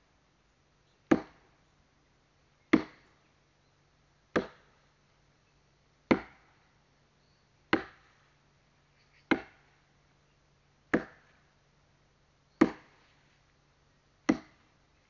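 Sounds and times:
axe chopping wood: 0:01.1 - 0:01.5, 0:02.7 - 0:03.1, 0:04.3 - 0:04.7, 0:06.1 - 0:06.6, 0:07.7 - 0:08.1, 0:09.3 - 0:09.7, 0:10.9 - 0:11.4, 0:12.6 - 0:13.0, 0:14.3 - 0:14.7.

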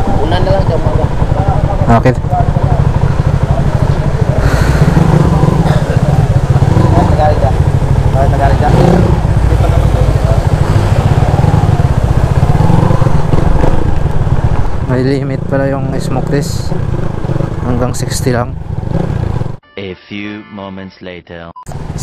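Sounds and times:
motorcycle exhaust rumble: 0:00.0 - 0:19.6.

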